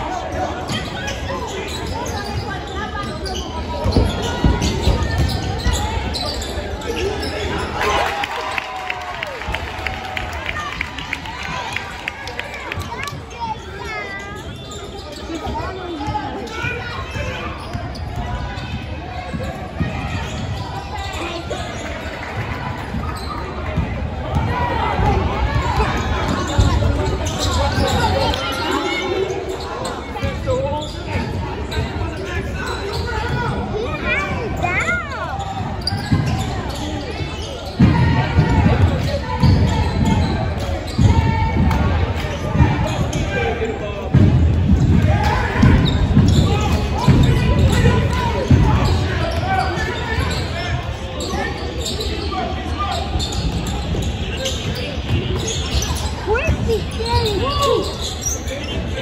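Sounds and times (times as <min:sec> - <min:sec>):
spectators talking: 0:00.0 - 0:59.0.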